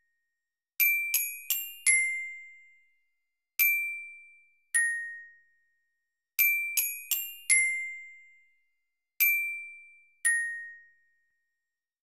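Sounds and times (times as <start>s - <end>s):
glockenspiel notes: 9.3s - 11.2s.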